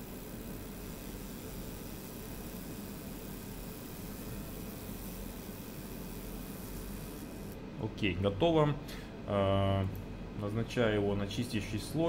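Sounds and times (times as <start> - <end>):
laser marking hiss: 0.0 - 7.6.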